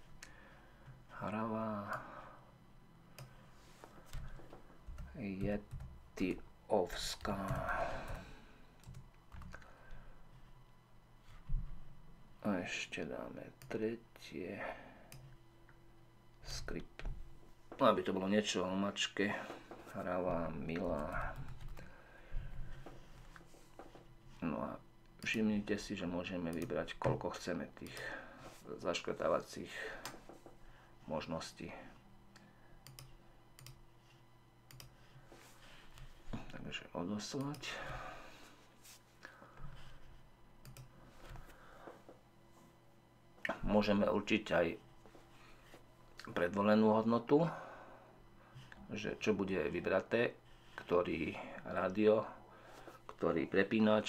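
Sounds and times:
faint computer keyboard keystrokes: 0:08.8 - 0:09.7, 0:32.3 - 0:33.8, 0:34.7 - 0:35.0, 0:40.6 - 0:41.4
faint computer mouse clicks: 0:32.4 - 0:33.8.

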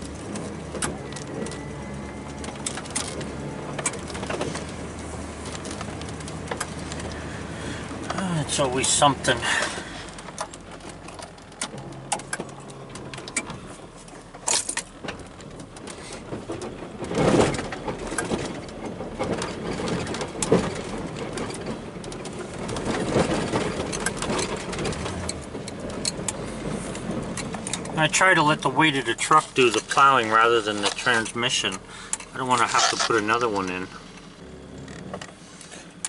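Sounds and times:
plow scraping and rattling: 0:00.0 - 0:36.0
truck engine running low: 0:00.0 - 0:36.0
knocks and bumps: 0:08.0 - 0:34.1.

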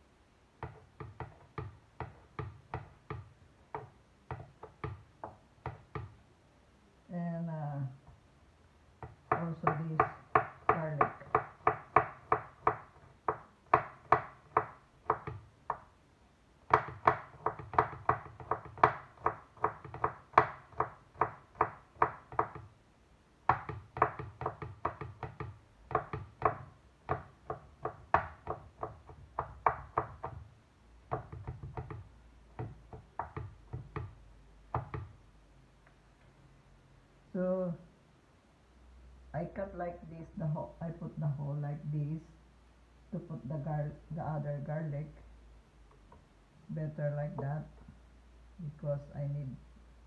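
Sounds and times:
knife chopping on wooden board: 0:00.6 - 0:06.1, 0:16.7 - 0:22.7, 0:23.5 - 0:30.4, 0:31.1 - 0:35.1.

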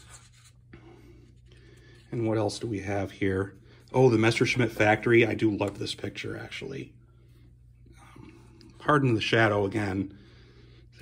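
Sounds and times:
hand rustling glossy paper page: 0:00.0 - 0:02.1.

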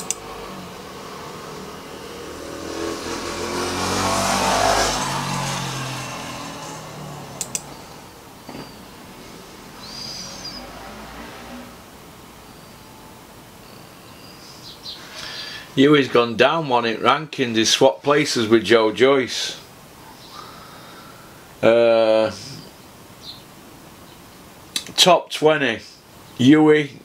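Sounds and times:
sharp clicks: 0:00.0 - 0:00.2, 0:07.4 - 0:07.8
vehicle passing by: 0:00.0 - 0:12.9.

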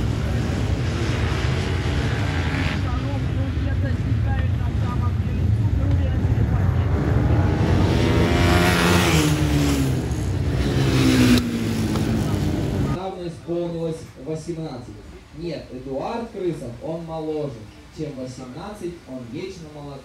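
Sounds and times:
motorcycle passing close: 0:00.0 - 0:03.8, 0:04.8 - 0:13.0
motorcycles racing at high revs: 0:00.0 - 0:13.0.

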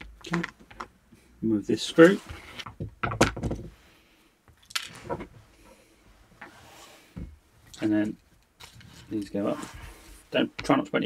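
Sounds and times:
plastic parts clicking and knocking: 0:00.0 - 0:01.0, 0:02.6 - 0:03.7.

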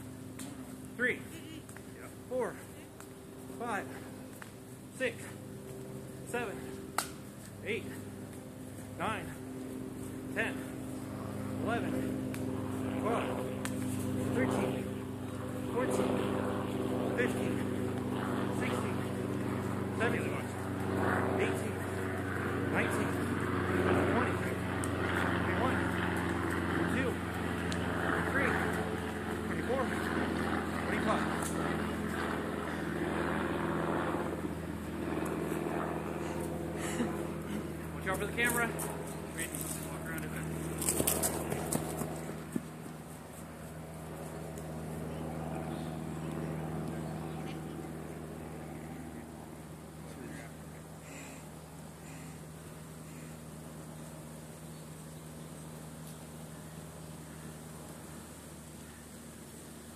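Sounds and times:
engine humming: 0:00.0 - 0:59.9
man calling out numbers: 0:01.0 - 0:04.2, 0:04.9 - 0:05.5, 0:06.2 - 0:06.8, 0:07.6 - 0:08.2, 0:08.9 - 0:09.5, 0:10.2 - 0:12.2, 0:13.0 - 0:13.6, 0:14.2 - 0:15.0, 0:15.6 - 0:16.2, 0:17.1 - 0:20.6, 0:21.3 - 0:27.6, 0:28.2 - 0:30.1, 0:30.7 - 0:31.5, 0:37.9 - 0:40.6.

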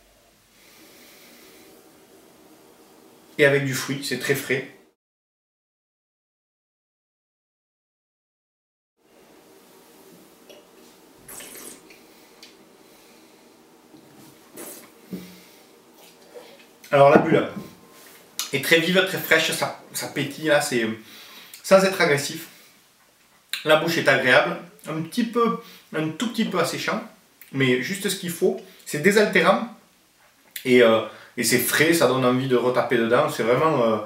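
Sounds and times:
long nasal sniff: 0:11.3 - 0:13.5, 0:14.5 - 0:15.7.

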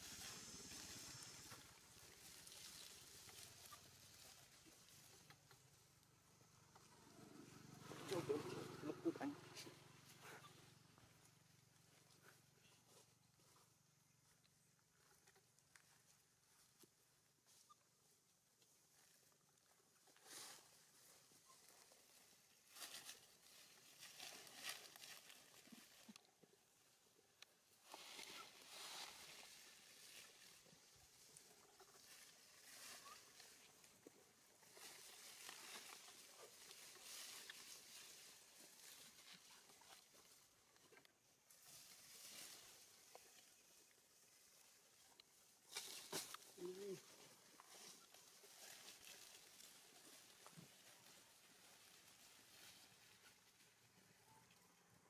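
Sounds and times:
rustling of dry leaf litter: 0:00.0 - 0:06.4, 0:18.8 - 0:54.4.

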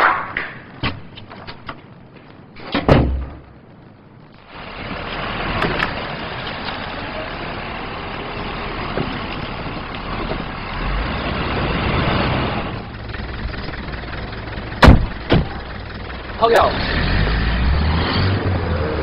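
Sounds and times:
car engine and road noise: 0:00.0 - 0:19.0
sharp knocks: 0:14.8 - 0:15.6.

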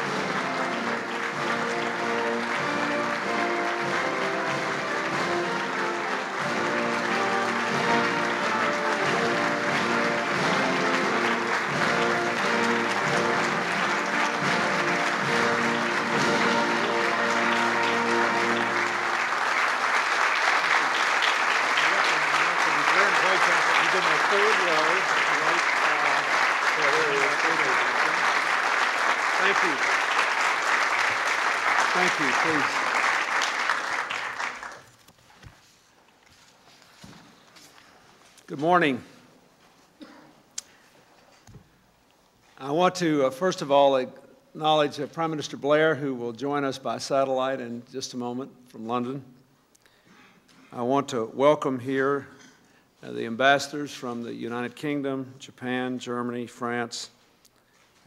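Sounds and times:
instrumental music: 0:00.0 - 0:19.6
audience applause: 0:00.0 - 0:35.1.

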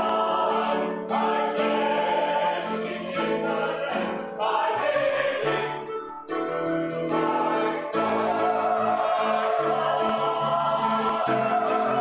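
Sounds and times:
choir singing in harmony: 0:00.0 - 0:12.0.

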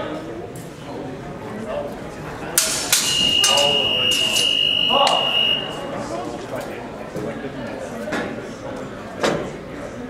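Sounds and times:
swords clashing: 0:02.6 - 0:05.2.

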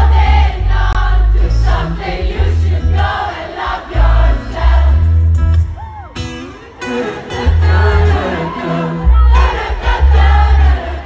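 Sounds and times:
audience singing along: 0:00.0 - 0:05.8, 0:06.5 - 0:11.0
heavy bass: 0:00.0 - 0:06.0, 0:07.4 - 0:08.2, 0:09.0 - 0:11.0
guitar: 0:00.0 - 0:11.0
person singing: 0:06.2 - 0:11.0.

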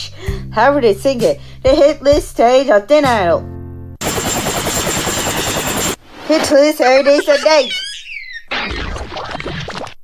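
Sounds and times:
steady high whine: 0:04.0 - 0:06.4
fast fluttering whirr: 0:04.1 - 0:06.0.

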